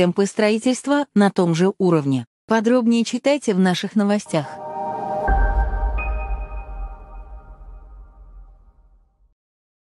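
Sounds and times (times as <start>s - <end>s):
low rumble: 4.3s - 9.1s.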